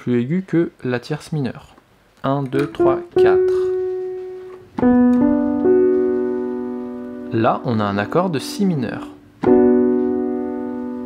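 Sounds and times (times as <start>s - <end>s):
piano notes: 2.5s - 11.0s.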